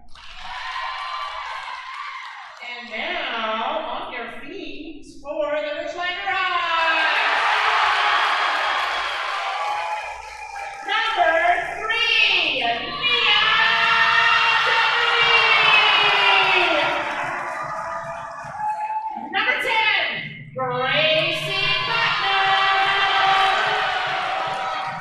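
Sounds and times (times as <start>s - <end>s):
crowd cheering and clapping: 0.0s - 2.6s, 6.6s - 19.6s, 21.0s - 25.0s
announcer calling out: 10.9s - 16.9s, 19.4s - 23.6s.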